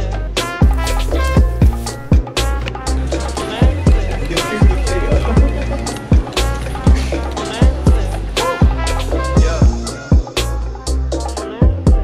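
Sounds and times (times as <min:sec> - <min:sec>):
sustained bass: 0:00.0 - 0:12.0
deep kick drums: 0:00.6 - 0:02.5, 0:03.6 - 0:10.3.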